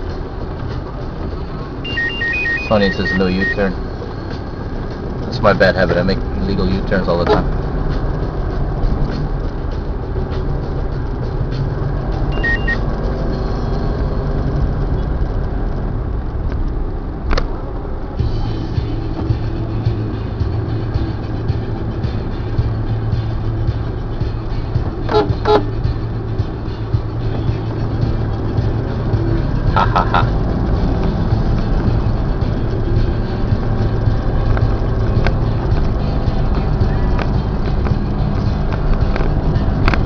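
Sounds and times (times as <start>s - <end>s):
vehicle engine and road noise: 0.0s - 40.0s
car horn toots: 1.8s - 3.6s, 7.2s - 7.5s, 12.3s - 12.8s, 25.0s - 25.9s.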